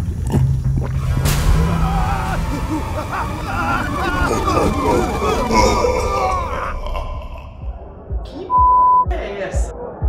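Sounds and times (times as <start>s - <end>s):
background music: 0.0s - 10.0s
low thumps: 0.5s - 8.4s
voices: 1.4s - 10.0s
electronic beep: 8.5s - 9.1s.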